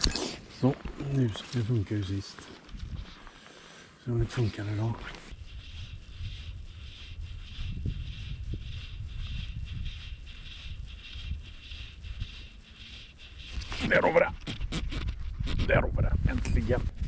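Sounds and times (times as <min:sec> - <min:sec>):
wind buffeting microphone: 0:05.3 - 0:17.0.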